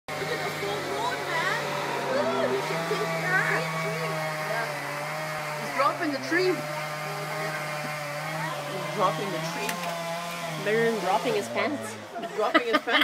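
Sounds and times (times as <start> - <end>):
chainsaw cutting wood: 0.1 - 12.6.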